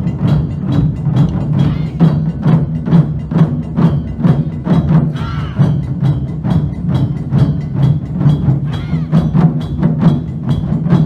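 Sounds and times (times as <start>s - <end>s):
taiko drums beating in unison: 0.0s - 11.0s.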